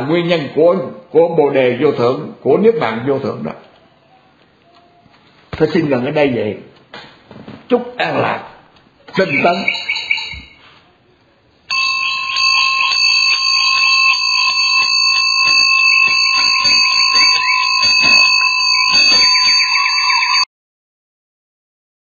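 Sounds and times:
high electronic tones: 9.2 - 10.5, 11.7 - 20.5
pulsing electronic pattern: 13.6 - 19.6.

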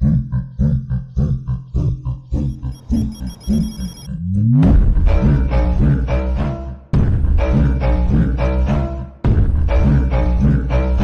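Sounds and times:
high ringing tone: 2.5 - 4.1.

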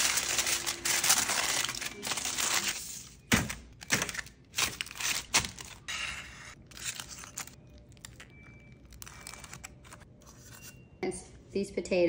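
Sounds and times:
aluminium foil crinkling: 0.0 - 3.2, 3.8 - 5.9, 6.5 - 10.6.

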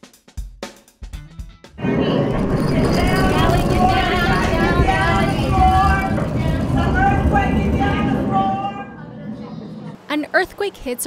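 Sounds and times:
earthquake rumble: 1.8 - 10.0
people's raised voices: 1.9 - 10.0.

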